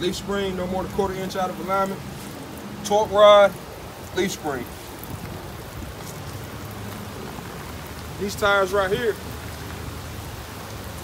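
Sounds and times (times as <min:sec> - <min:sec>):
light rain falling: 0:00.0 - 0:11.0.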